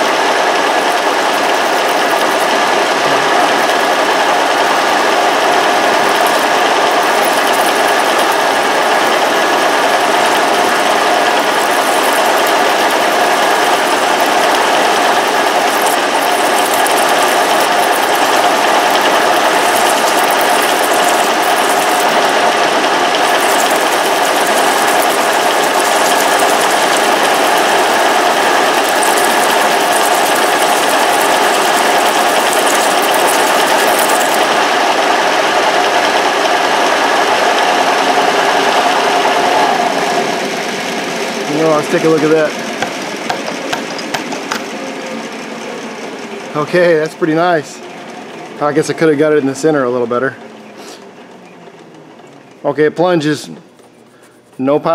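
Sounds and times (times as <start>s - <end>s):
milling machine cutting aluminium: 0.0s - 50.0s.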